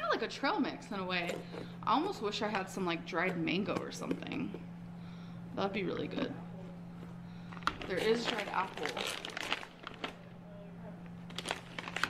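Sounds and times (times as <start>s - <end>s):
steady low hum: 0.0s - 12.0s
plastic packaging crinkling: 7.5s - 10.3s, 11.2s - 12.0s.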